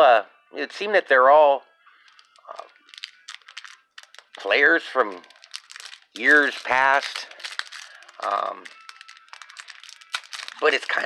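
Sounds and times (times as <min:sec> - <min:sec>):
wrapper crinkling: 0:02.0 - 0:11.0.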